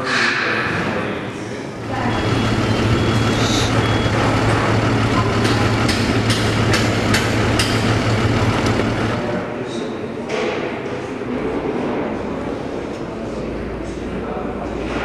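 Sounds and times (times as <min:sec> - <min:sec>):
heavy vehicle engine running: 0:01.0 - 0:09.6
high beeping: 0:01.8 - 0:06.3
sharp knocks: 0:05.2 - 0:09.0.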